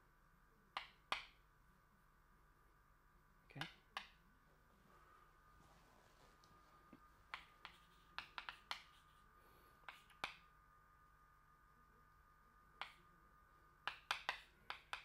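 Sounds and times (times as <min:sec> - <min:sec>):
faint steady hum: 0:00.0 - 0:15.0
chalk tapping on blackboard: 0:07.3 - 0:10.4.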